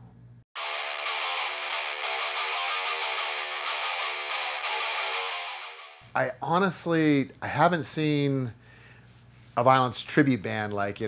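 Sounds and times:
distorted electric guitar riff: 0.6 - 6.0.

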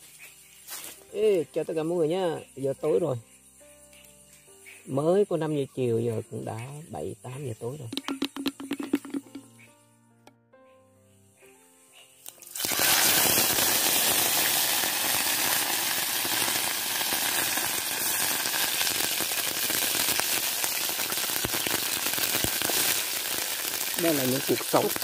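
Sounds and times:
soft background music: 0.0 - 12.7
fish sizzling in hot oil: 12.3 - 25.0.

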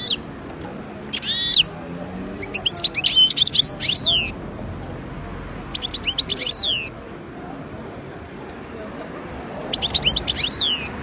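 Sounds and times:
goldfinch singing: 1.1 - 1.7, 2.4 - 4.4, 5.7 - 6.9, 9.7 - 11.0.

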